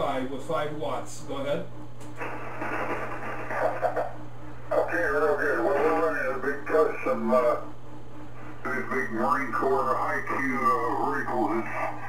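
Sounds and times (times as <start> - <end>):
radio band noise hiss: 0.0 - 12.0
steady low hum: 0.0 - 12.0.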